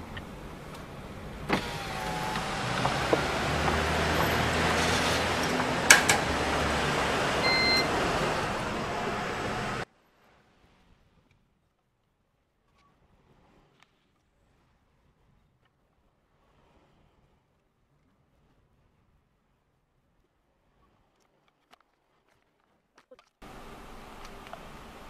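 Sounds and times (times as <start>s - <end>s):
car idling: 0.0s - 9.8s
power window motor whine: 1.2s - 9.8s
ticket machine beep: 7.4s - 8.0s.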